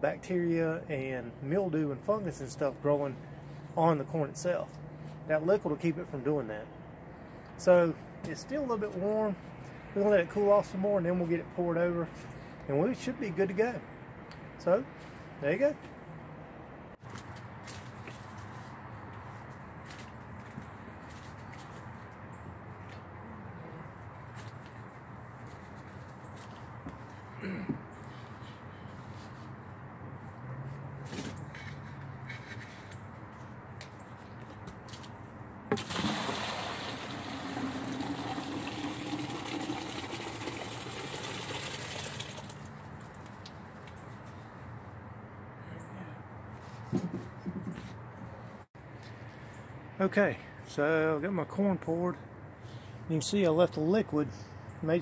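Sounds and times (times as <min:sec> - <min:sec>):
liquid and grain pouring into bucket: 0:35.7 - 0:42.6.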